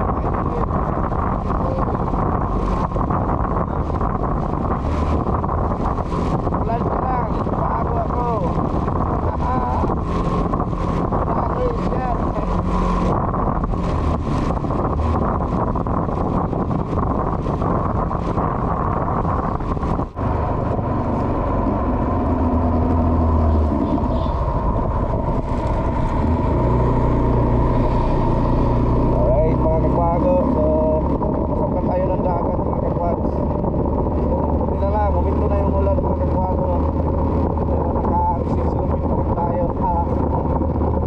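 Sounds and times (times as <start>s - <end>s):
motorcycle engine running: 0.0s - 41.0s
road noise on wet surface: 0.0s - 41.0s
wind buffeting microphone: 0.0s - 41.0s.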